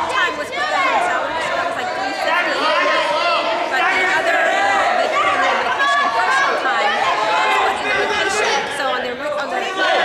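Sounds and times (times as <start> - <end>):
crowd babble: 0.0 - 10.0.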